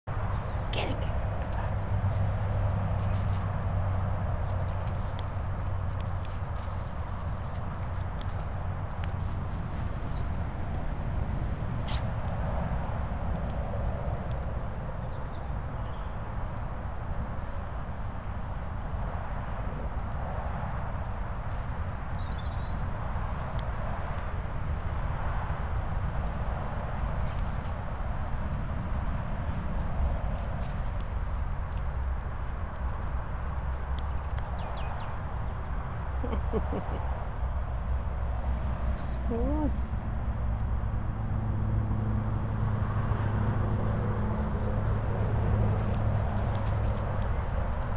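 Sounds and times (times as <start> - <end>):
steady low rumble: 0.1 - 47.9
dog paws thudding on grass: 1.2 - 13.0.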